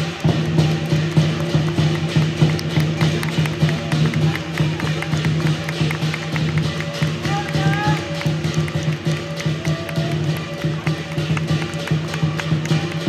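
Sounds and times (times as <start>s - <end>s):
hand cymbals crashing: 0.0s - 13.0s
large drum beating fast: 0.0s - 13.0s.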